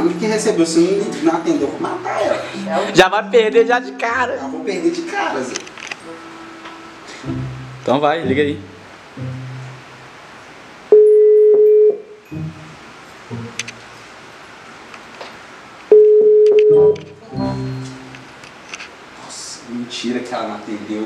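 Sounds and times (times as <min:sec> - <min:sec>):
phone ringback beeps: 0:10.9 - 0:12.1, 0:15.9 - 0:17.0.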